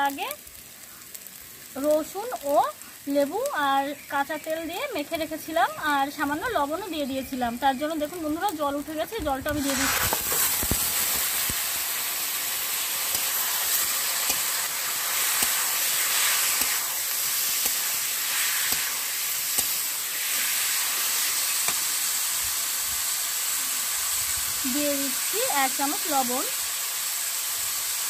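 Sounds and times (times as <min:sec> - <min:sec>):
chicken sizzling in hot oil: 0:00.0 - 0:28.0.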